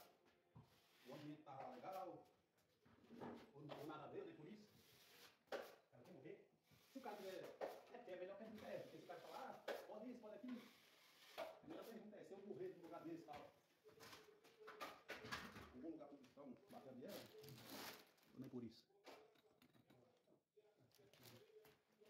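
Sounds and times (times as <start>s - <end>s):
trowel scraping plasterboard: 4.7s - 5.8s, 6.7s - 7.9s, 8.5s - 11.9s.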